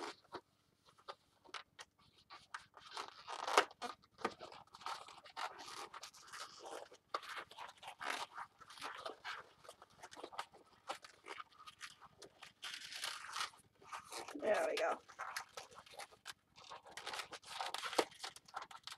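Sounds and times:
balloon rubber rubbing and scraping: 0:00.0 - 0:18.9.

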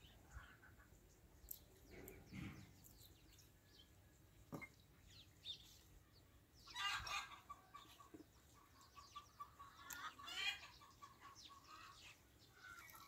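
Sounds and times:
chickens clucking: 0:00.2 - 0:01.2, 0:06.6 - 0:13.0.

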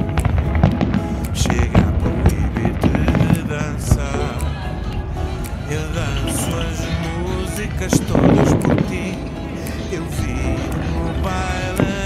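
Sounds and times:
fireworks bangs and crackles: 0:00.0 - 0:04.2
pop song with singer: 0:00.0 - 0:12.0.

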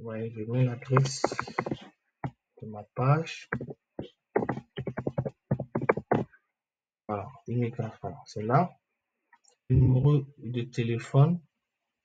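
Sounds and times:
keyboard typing: 0:00.7 - 0:01.9, 0:03.5 - 0:06.3.

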